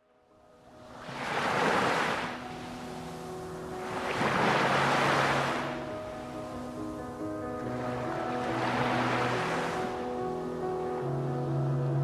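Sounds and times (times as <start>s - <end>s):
soft background music notes: 0.0s - 12.0s
waves washing onto pebble beach: 1.0s - 6.0s.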